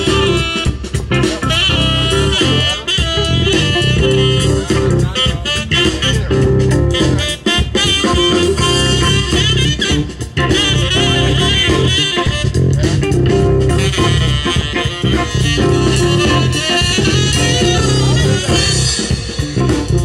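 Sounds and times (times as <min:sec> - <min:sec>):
bass guitar: 0:00.0 - 0:20.0
drum kit: 0:00.0 - 0:20.0
guitar lead melody: 0:00.0 - 0:20.0.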